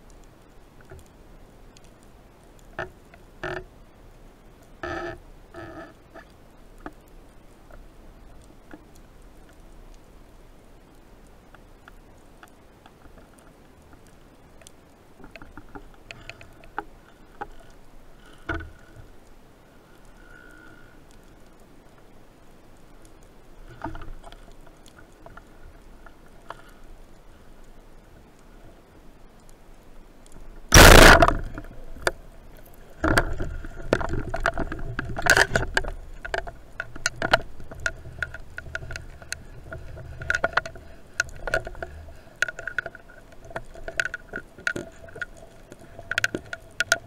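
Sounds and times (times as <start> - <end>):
faint scattered ticks: 0.0 - 47.0
underwater clicks and crackles: 0.0 - 47.0.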